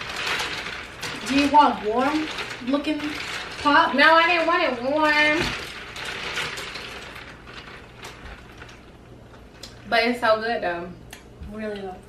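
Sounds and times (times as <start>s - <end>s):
soda fizz crackle: 0.0s - 10.8s.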